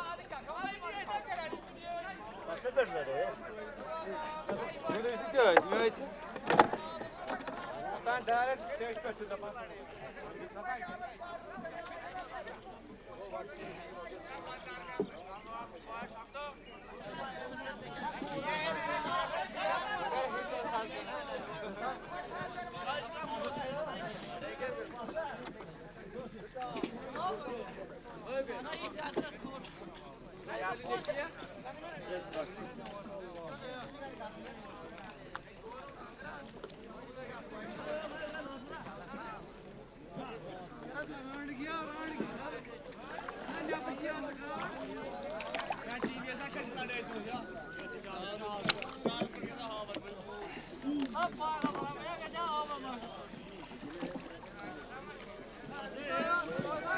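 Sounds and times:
men talking and calling: 0.0 - 56.9
men talking at once: 40.1 - 56.9.

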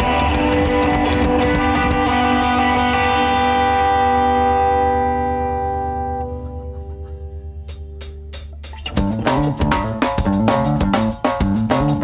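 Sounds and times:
electric guitar and bass chord: 0.0 - 12.0.

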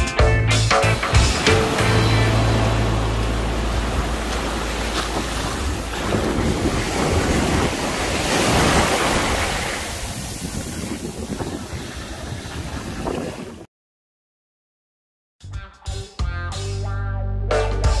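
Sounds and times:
ocean surf washing up beach: 1.0 - 13.7
wind noise on microphone: 3.5 - 13.7.

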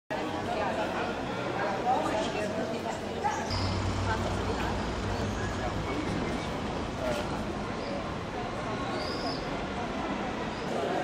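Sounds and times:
passers-by talking: 0.1 - 11.0.

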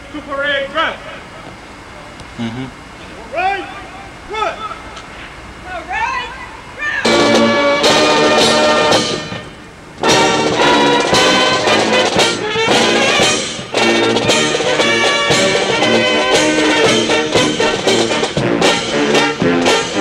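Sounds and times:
military brass band playing: 7.0 - 20.0.

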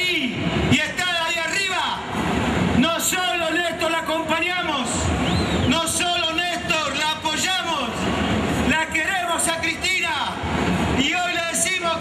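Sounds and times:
man giving a speech: 0.0 - 12.0.

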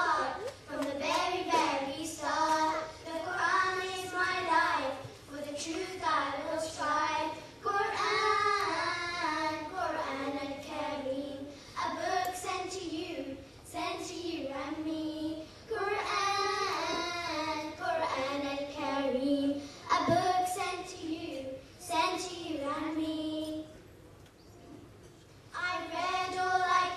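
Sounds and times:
children singing together: 0.0 - 23.6, 25.6 - 26.9.

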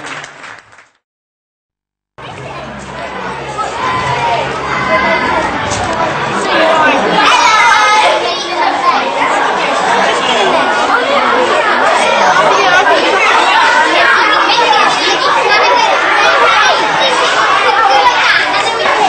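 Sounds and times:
children and adults chattering: 2.2 - 19.0.

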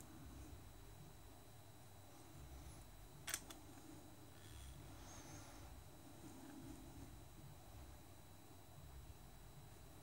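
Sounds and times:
sharp click: 3.2 - 3.6.

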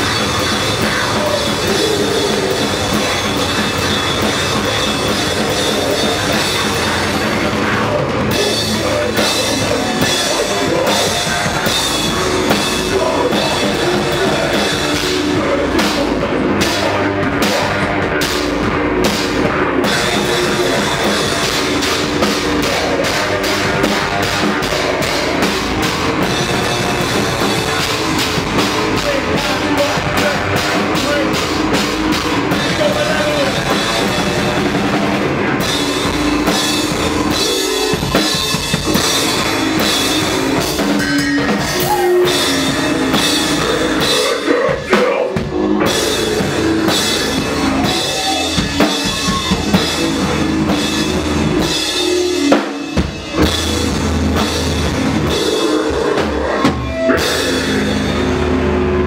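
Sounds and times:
hardcore band playing loudly: 0.0 - 59.0.

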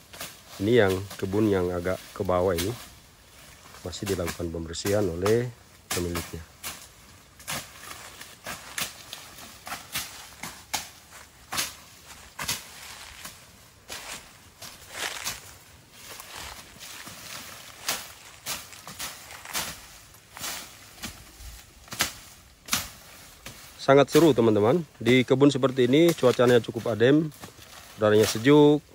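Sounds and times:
machetes chopping brush: 0.0 - 28.9
rustle of cut vegetation: 0.0 - 28.9.

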